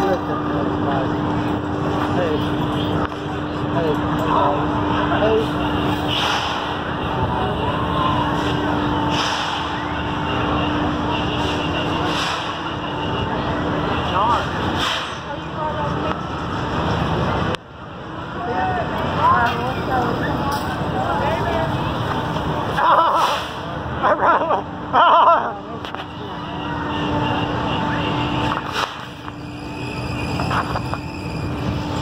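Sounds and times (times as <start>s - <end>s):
distant chatter of voices: 0.0s - 32.0s
ride machinery hum: 0.0s - 32.0s.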